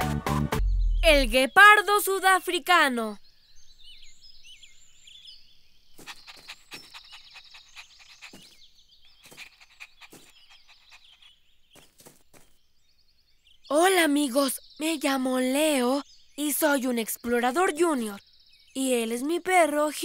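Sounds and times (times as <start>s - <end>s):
small birds chirping: 0.6s - 20.0s.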